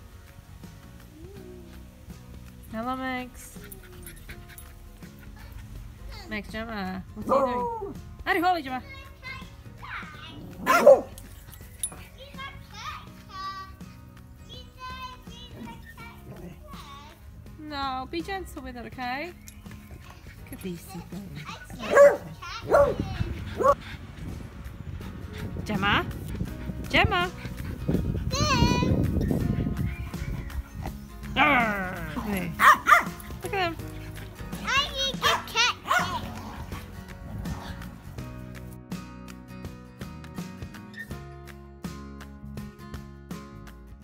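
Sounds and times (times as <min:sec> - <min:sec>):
dogs barking: 0:07.2 - 0:08.0, 0:10.0 - 0:13.2, 0:19.6 - 0:38.1
dog barking: 0:10.6 - 0:11.3, 0:21.7 - 0:23.8, 0:32.6 - 0:33.3, 0:35.1 - 0:36.9.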